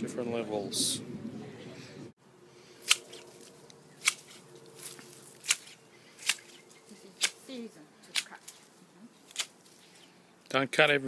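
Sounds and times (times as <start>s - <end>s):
garden scissors snipping stems: 2.8s - 10.1s.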